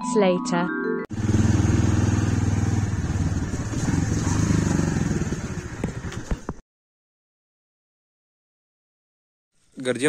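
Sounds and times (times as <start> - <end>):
motorcycle engine running: 1.1 - 6.6.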